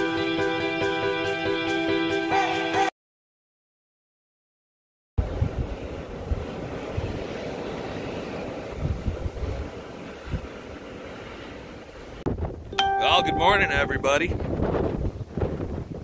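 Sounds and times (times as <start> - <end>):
wind buffeting microphone: 5.2 - 10.8, 12.0 - 12.7, 14.2 - 16.0.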